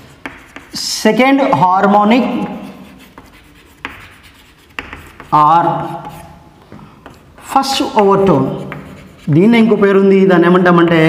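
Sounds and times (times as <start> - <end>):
chalk scratching on chalkboard: 0.0 - 1.0, 2.0 - 9.8.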